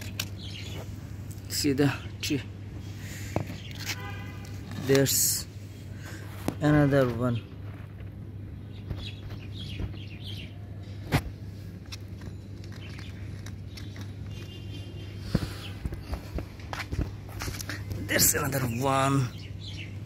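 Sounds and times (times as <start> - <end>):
birds chirping faintly: 0.0 - 20.0
footsteps on concrete: 15.2 - 18.2.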